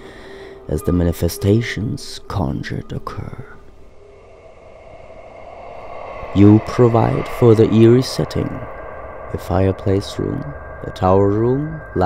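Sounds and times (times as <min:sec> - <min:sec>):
ambient music drone: 0:03.7 - 0:12.0.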